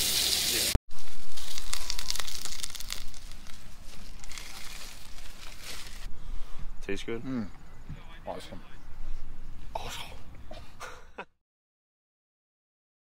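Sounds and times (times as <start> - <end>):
sausages sizzling: 0.0 - 6.1
crackling and popping: 0.9 - 6.1.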